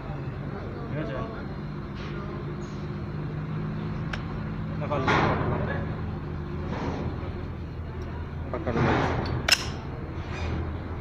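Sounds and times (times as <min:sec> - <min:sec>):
steady low hum: 0:00.0 - 0:11.0
sharp click: 0:09.2 - 0:09.8.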